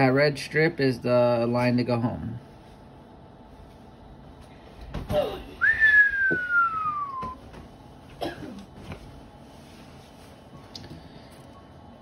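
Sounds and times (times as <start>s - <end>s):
person whistling sliding note: 5.6s - 7.4s.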